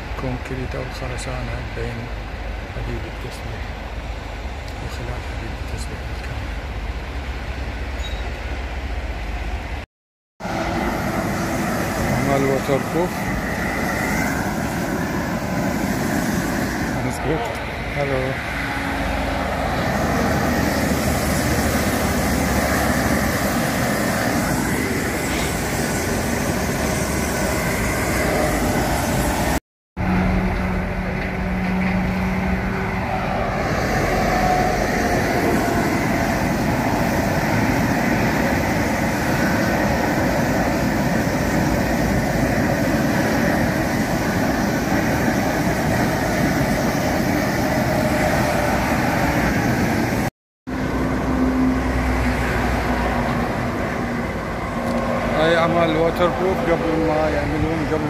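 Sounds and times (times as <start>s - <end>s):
motorway traffic passing: 0.0s - 9.8s, 10.4s - 58.0s.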